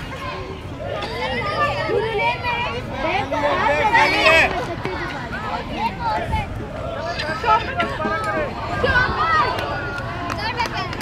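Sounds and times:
girls talking and calling out: 0:00.0 - 0:11.0.

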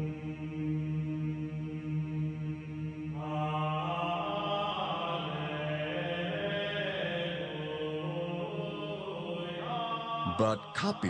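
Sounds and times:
chanting voices: 0:00.0 - 0:11.0
high voices holding long notes: 0:10.2 - 0:11.0.

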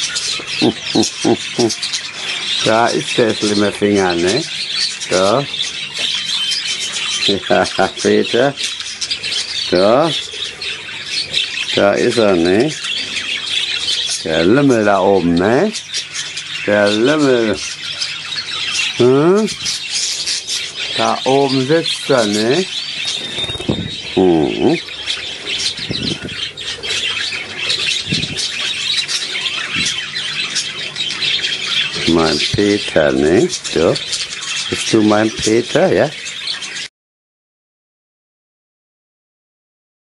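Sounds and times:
budgerigars chattering and warbling: 0:00.0 - 0:36.9.

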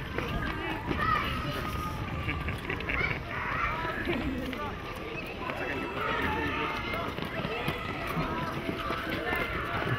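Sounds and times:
children chattering and shouting: 0:00.0 - 0:09.9
footsteps on dirt: 0:04.1 - 0:09.9.

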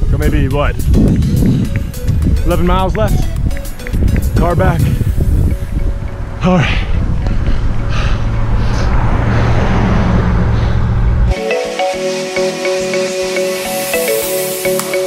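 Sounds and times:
background music with steady beat: 0:00.0 - 0:06.4, 0:11.3 - 0:15.0
wind rushing over microphone: 0:00.0 - 0:11.4.

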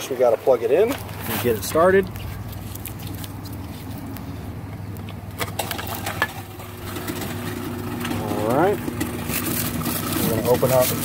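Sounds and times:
garbage disposal motor humming: 0:00.0 - 0:11.0.

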